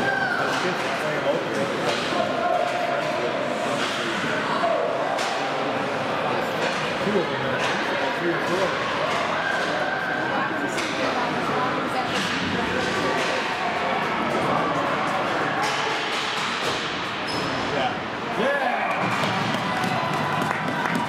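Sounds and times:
people talking in stands: 0.0 - 21.0
hockey sticks and puck clacking: 0.4 - 3.2, 5.1 - 5.6, 6.5 - 10.0, 10.7 - 11.5, 12.1 - 17.7, 18.9 - 21.0.

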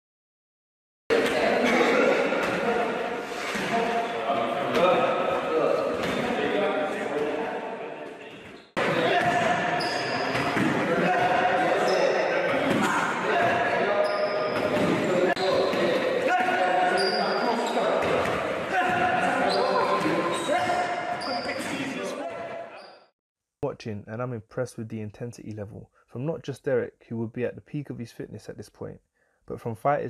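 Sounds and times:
men shouting: 18.6 - 22.7.

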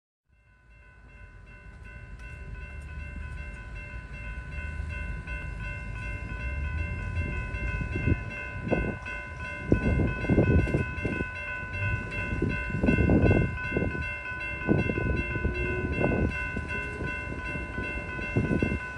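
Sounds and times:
crossing warning bell ringing: 0.3 - 18.9
approaching train rumble: 0.6 - 18.9.

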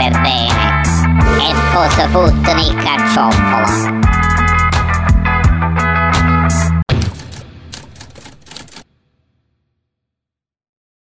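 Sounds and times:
typewriter keys clacking: 6.9 - 8.8.

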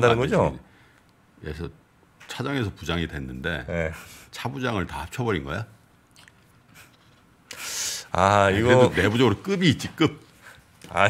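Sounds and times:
breath hissing into microphone: 7.5 - 8.1.

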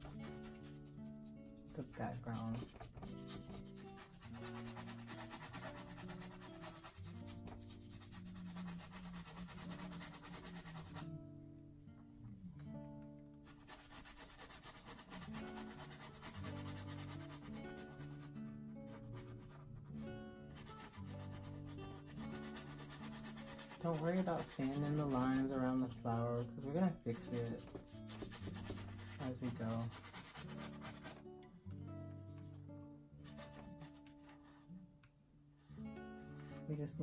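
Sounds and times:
soft background music: 0.0 - 37.0
paintbrush scrubbing on canvas: 2.3 - 11.1, 13.5 - 18.3, 20.6 - 31.2.

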